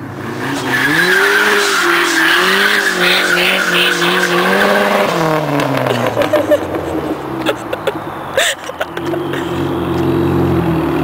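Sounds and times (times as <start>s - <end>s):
car engine revs falling: 0.0s - 11.0s.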